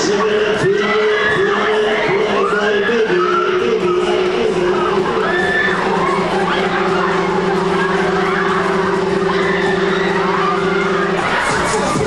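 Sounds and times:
fairground ride cars rumbling: 0.0s - 12.0s
loud ride music: 0.0s - 12.0s
wailing tone rising and falling: 0.0s - 12.0s.

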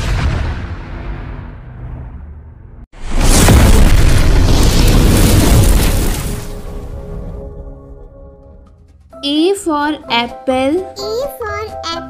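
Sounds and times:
explosion boom with deep rumble: 0.0s - 7.5s.

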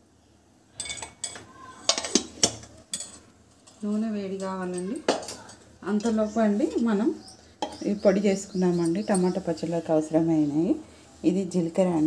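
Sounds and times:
metal utensils clinking: 0.8s - 8.1s, 8.8s - 9.6s.

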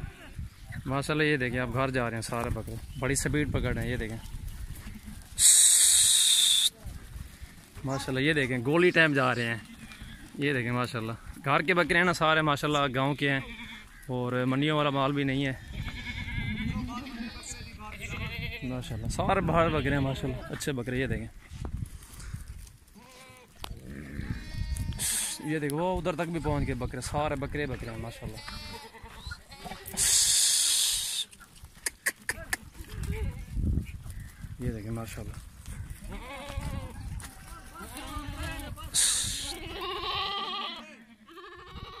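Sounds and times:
goat bleating: 12.7s - 14.1s, 15.6s - 20.6s, 23.0s - 26.9s, 27.8s - 33.6s, 35.9s - 42.0s.

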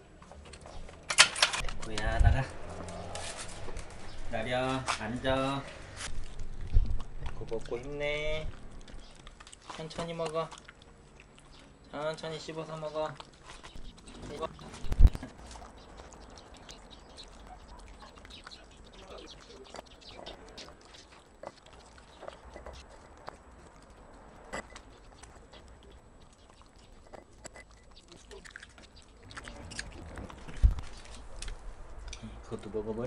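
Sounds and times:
dog crunching vegetables: 0.1s - 32.2s
rustling: 0.2s - 11.8s, 12.4s - 32.2s.

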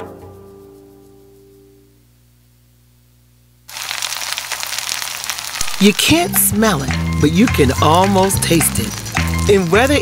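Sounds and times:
sausages sizzling in a skillet: 3.7s - 10.0s.

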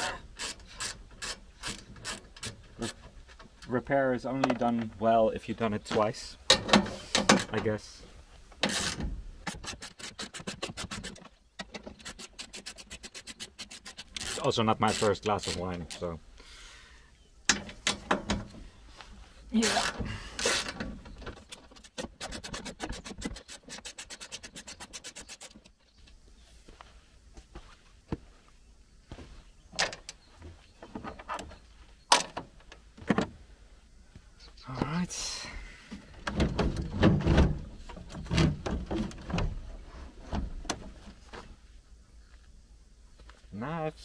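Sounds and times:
plastic and metal clatter: 36.2s - 41.5s.

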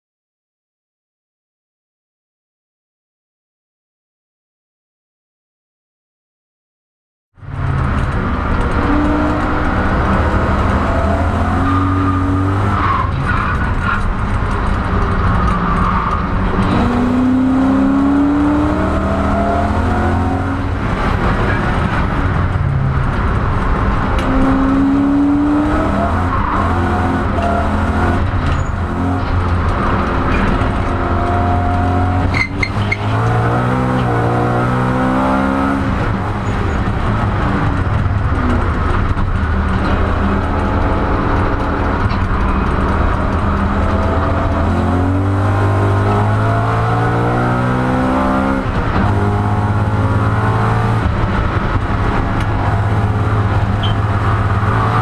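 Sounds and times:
car engine revving: 7.4s - 55.0s
tyre squeal: 28.4s - 28.8s, 32.3s - 33.2s, 53.8s - 54.1s.

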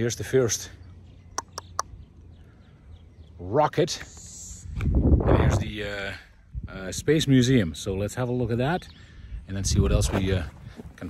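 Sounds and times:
bird calling: 0.5s - 3.4s.

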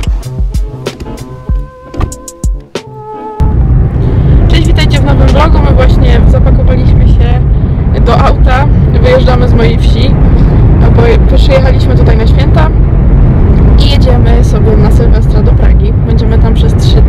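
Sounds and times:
road and engine rumble: 0.0s - 17.0s
woman talking: 4.4s - 10.2s, 10.8s - 12.8s, 13.7s - 17.0s.

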